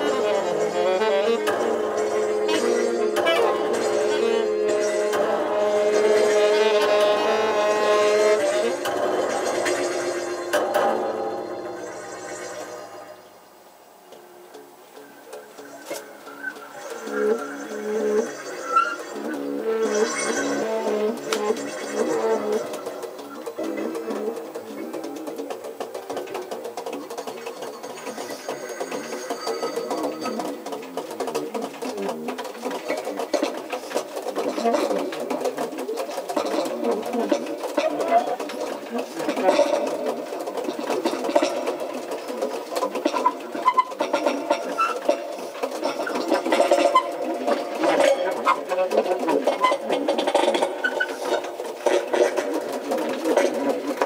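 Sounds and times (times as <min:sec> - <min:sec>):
saxophones improvising: 0:00.0 - 0:13.5, 0:14.1 - 0:54.0
other instruments and electronics: 0:00.0 - 0:54.0.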